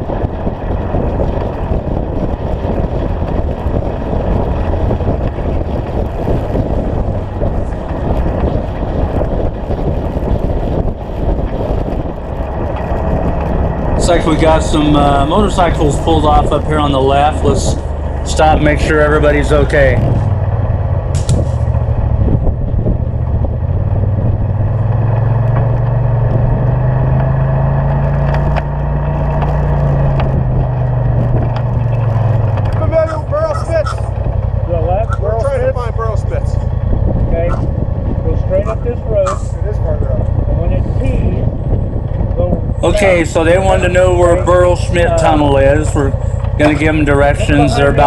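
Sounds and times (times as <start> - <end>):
vehicle engine idling: 0.0 - 48.0.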